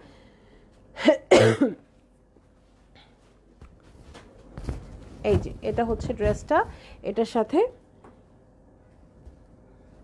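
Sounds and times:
woman coughing: 1.0 - 1.9.

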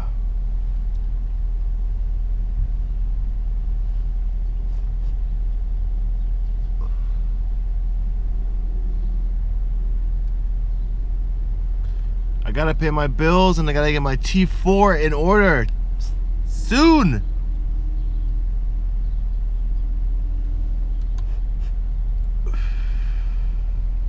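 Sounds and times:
faint steady hum: 0.0 - 24.0
car engine idling: 9.7 - 18.2.

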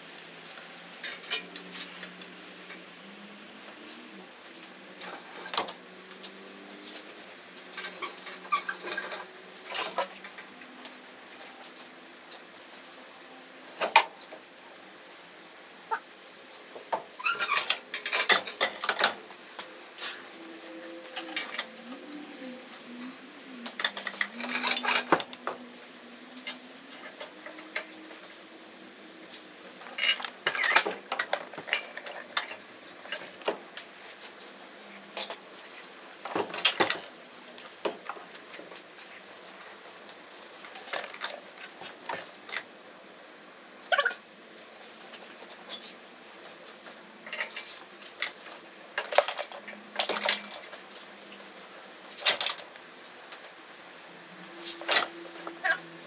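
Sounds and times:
chain and hook rattling: 23.8 - 25.2.

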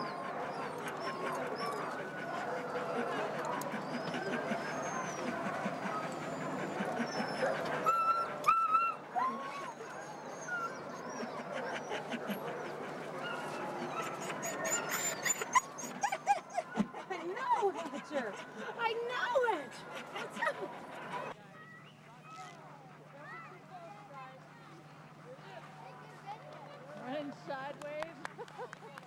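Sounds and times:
sled dogs yipping and barking: 0.0 - 21.3.

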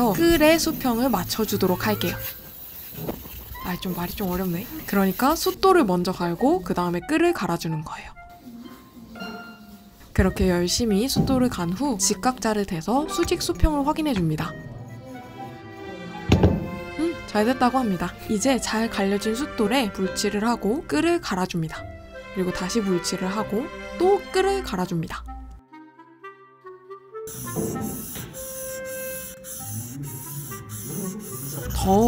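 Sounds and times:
sharp thud: 16.3 - 16.8.

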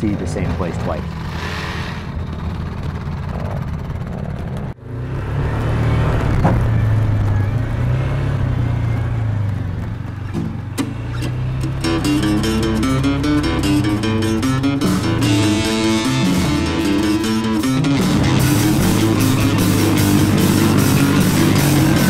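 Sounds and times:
atv engines running: 0.0 - 22.0
background music: 11.3 - 22.0.

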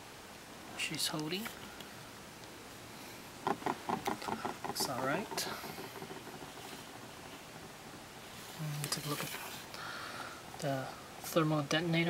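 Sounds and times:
person speaking indistinctly: 4.4 - 6.4.

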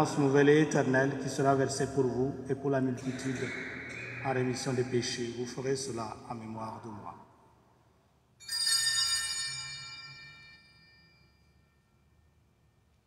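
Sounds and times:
altar bell ringing: 8.4 - 12.5.

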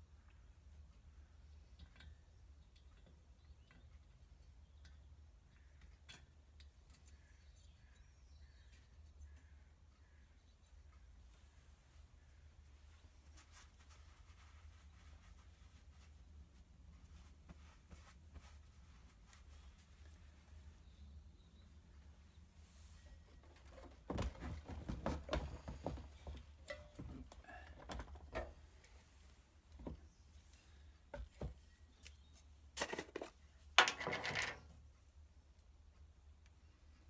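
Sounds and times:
small items clattering on steel: 32.8 - 34.7.

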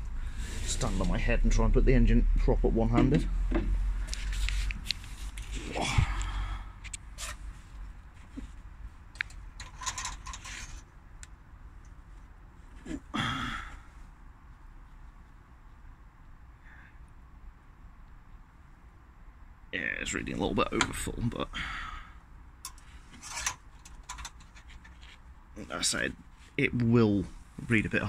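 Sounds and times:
hands working in engine bay: 8.1 - 10.8, 22.6 - 25.2
oil dipstick scraping out: 22.7 - 25.0.

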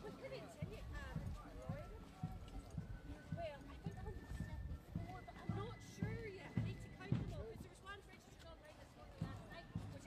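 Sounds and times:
footsteps on tarmac: 0.0 - 10.0
people's voices: 0.0 - 10.0.

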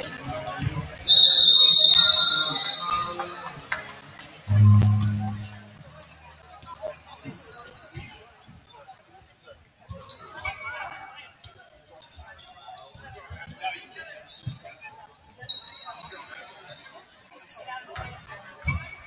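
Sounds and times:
voices echoing in hall: 1.0 - 8.0.

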